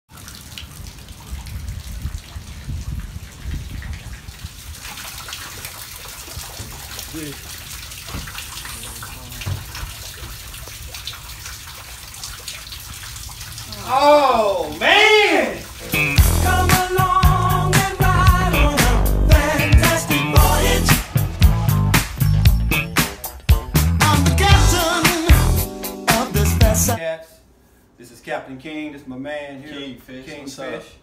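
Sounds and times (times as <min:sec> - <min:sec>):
steady rain falling: 0:00.1 - 0:21.9
low rumble: 0:16.2 - 0:22.7.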